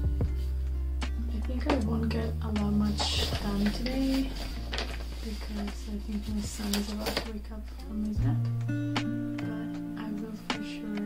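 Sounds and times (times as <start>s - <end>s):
held bass line: 0.0s - 6.7s
lo-fi music with plucked guitar: 0.0s - 11.0s.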